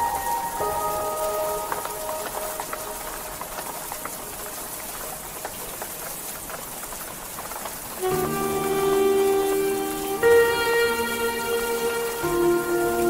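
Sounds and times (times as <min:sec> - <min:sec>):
faint music: 0:00.0 - 0:05.4, 0:08.0 - 0:13.0
rain patter: 0:00.0 - 0:13.0
sustained chord: 0:08.0 - 0:13.0.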